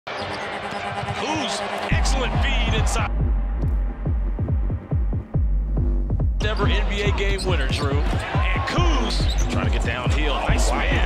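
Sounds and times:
arena crowd noise: 0.1s - 3.6s, 6.4s - 11.0s
heavy bass music beat: 1.9s - 11.0s
shoe squeaks: 8.9s - 9.8s.

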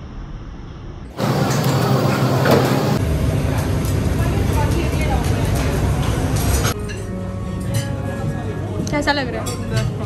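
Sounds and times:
busy restaurant room noise: 1.1s - 10.0s.

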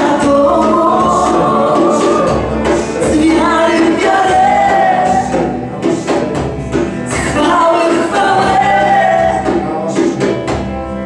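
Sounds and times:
music with singing voices: 0.0s - 11.0s.

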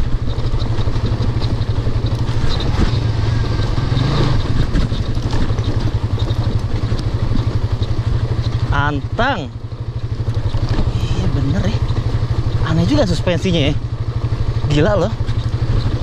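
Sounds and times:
motorcycle engine at low speed: 0.0s - 16.0s.

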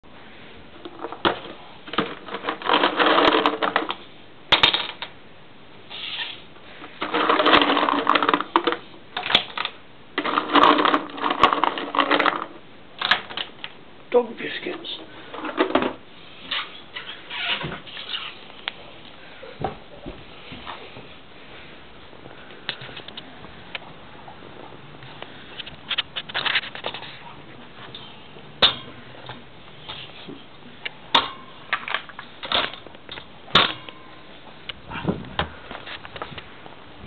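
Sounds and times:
rustles and knocks of handling: 14.6s - 28.1s.

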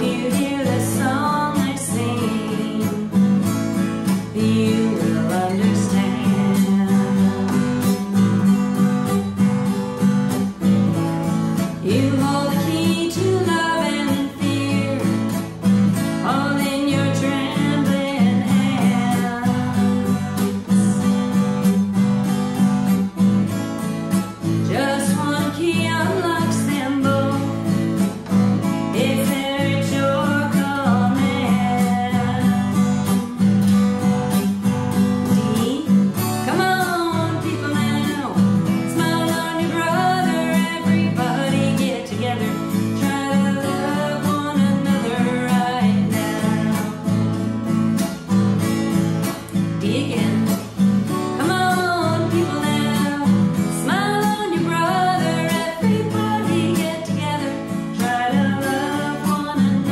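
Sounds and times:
woman singing: 0.0s - 22.0s, 24.1s - 47.6s, 49.4s - 59.9s
acoustic guitar strumming: 0.0s - 59.9s.

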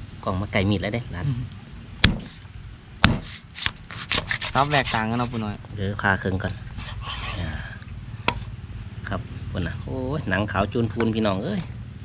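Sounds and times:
cleaver chopping on wooden block: 2.0s - 2.4s, 3.0s - 5.5s
light cutting strokes: 3.0s - 7.6s.

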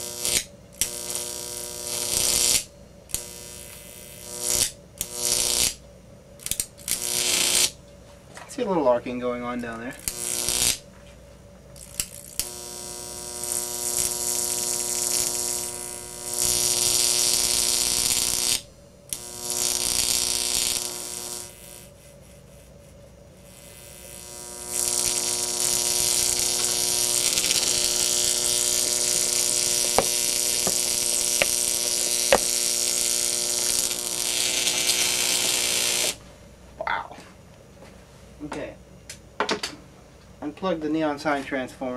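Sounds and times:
sharp electric snaps: 0.0s - 5.8s, 6.4s - 7.8s, 9.5s - 10.9s, 11.7s - 36.3s
electric arc buzzing: 0.0s - 7.8s, 9.1s - 11.0s, 11.8s - 36.5s
mains hum and hiss: 0.0s - 41.9s.

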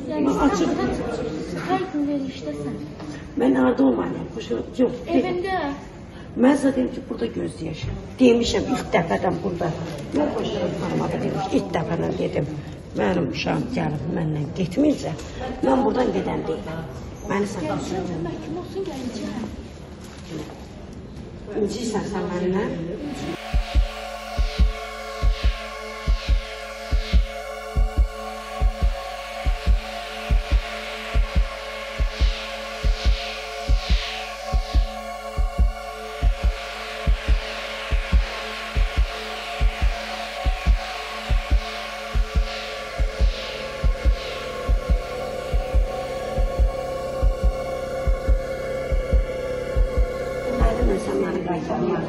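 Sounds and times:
steady sustained drone: 22.2s - 52.0s
held chord: 23.0s - 51.8s
heartbeat-like double thump: 23.4s - 50.9s.

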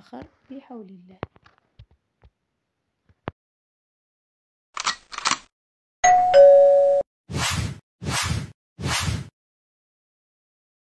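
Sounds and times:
two-note doorbell chime: 6.0s - 7.0s.

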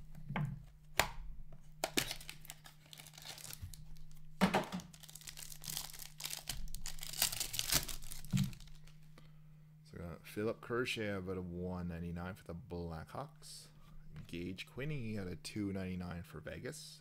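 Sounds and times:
plastic wrapper tearing and crinkling: 1.8s - 9.0s.

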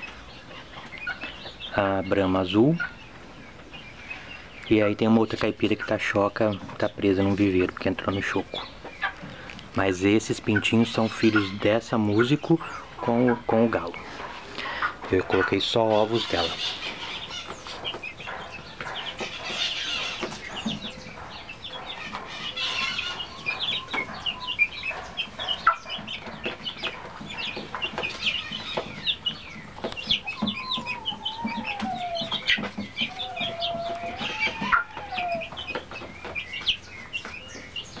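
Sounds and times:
chicks peeping: 0.0s - 38.0s
wavering chicken calls: 0.0s - 38.0s.

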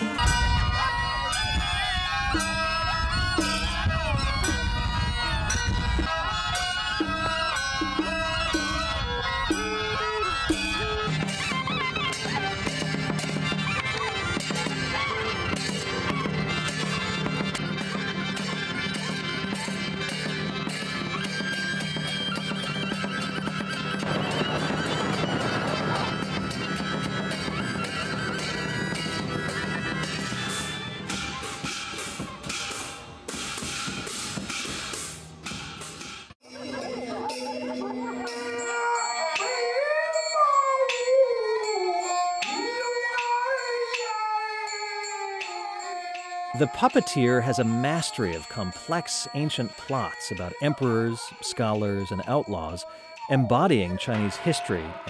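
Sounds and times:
shawm band with drone: 0.0s - 35.1s, 46.6s - 55.0s
mouth organs and reed pipe melody: 46.6s - 55.0s.

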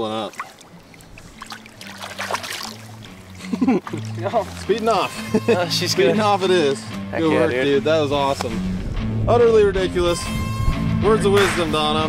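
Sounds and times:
water splashing: 0.0s - 5.4s
background music with bass line: 1.1s - 12.0s.

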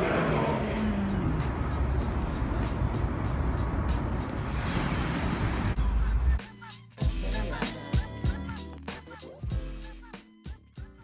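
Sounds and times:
passing cars roar: 0.0s - 5.8s
music with regular beat: 5.8s - 11.0s.

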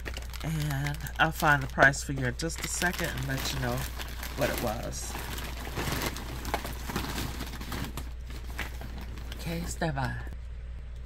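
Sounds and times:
steady low hum: 0.0s - 11.0s
items rustling and knocking: 1.4s - 10.2s.

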